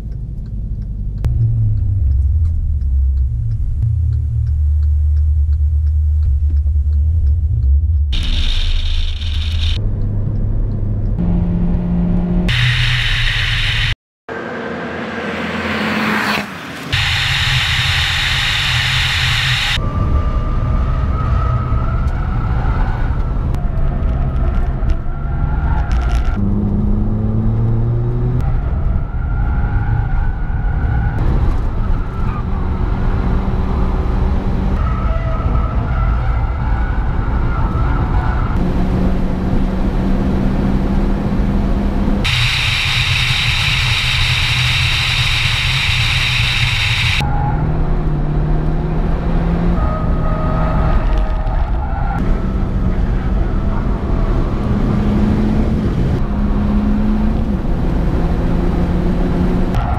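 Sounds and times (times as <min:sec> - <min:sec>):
car engine accelerating through gears: 0:00.0 - 0:12.9, 0:14.3 - 0:59.9
road and wind noise: 0:00.0 - 0:59.9.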